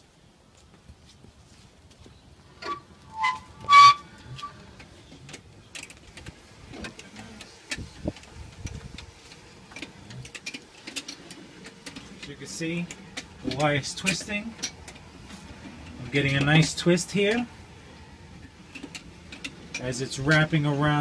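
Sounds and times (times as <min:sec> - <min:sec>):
short squeaks: 0:02.6 - 0:04.6.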